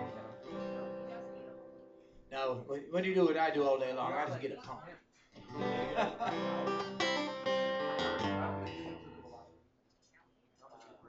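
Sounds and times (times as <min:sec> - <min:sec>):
acoustic guitar strumming: 0:00.0 - 0:02.1, 0:05.4 - 0:09.5.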